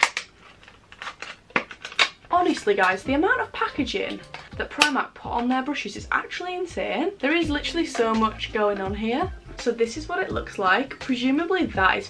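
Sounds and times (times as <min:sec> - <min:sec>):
plastic packaging clicking and crackling: 0:00.0 - 0:03.0, 0:04.1 - 0:05.5.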